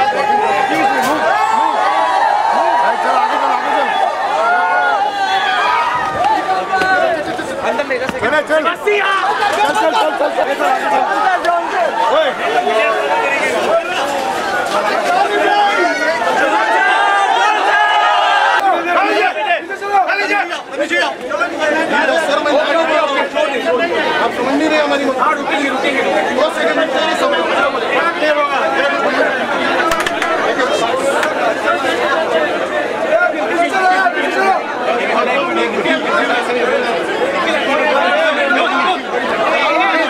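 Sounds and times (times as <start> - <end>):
crowd of men talking: 0.0 - 40.0.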